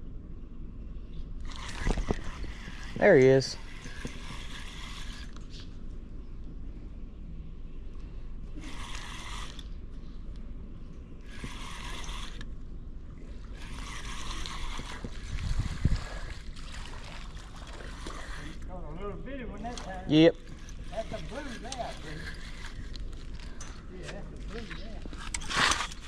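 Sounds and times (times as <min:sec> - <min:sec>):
fishing reel cranking: 0:01.4 - 0:05.6, 0:08.6 - 0:09.7, 0:11.2 - 0:12.5, 0:13.5 - 0:18.7, 0:19.7 - 0:26.0.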